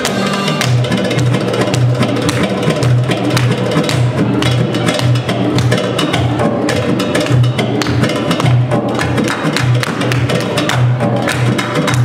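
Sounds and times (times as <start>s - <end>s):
belly dance music with drums: 0.0s - 12.0s.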